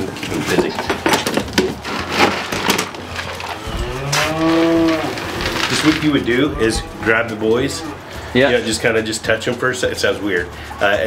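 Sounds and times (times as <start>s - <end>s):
wooden knocks and clatters: 0.0s - 7.2s
bull mooing: 3.5s - 8.4s.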